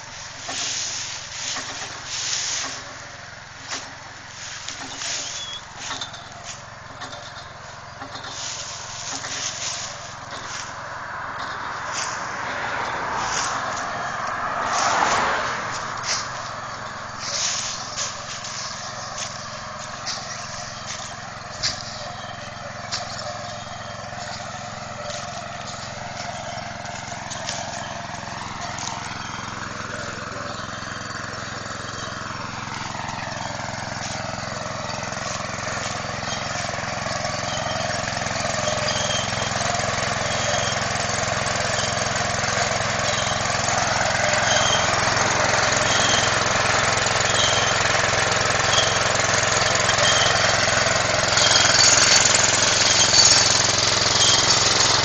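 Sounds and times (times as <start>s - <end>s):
small engine running: 0.0s - 55.0s.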